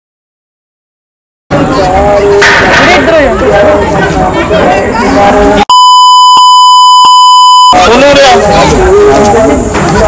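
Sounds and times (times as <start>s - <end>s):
censor bleep: 5.7s - 7.9s.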